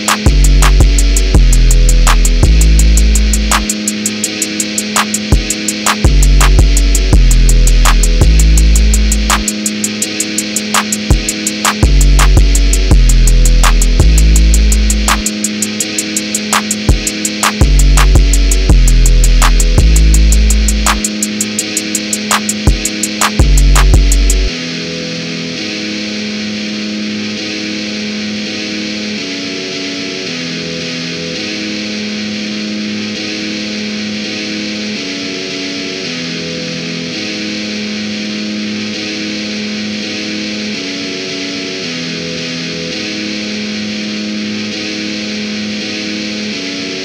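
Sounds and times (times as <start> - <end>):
distorted electric guitar chords: 0.0 - 47.0.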